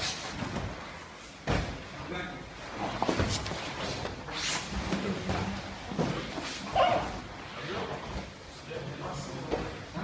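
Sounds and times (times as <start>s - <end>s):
body thud: 1.4s - 1.9s.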